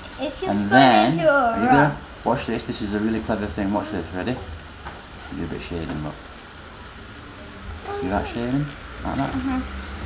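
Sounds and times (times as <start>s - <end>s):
tattoo machine humming: 5.3s - 10.0s.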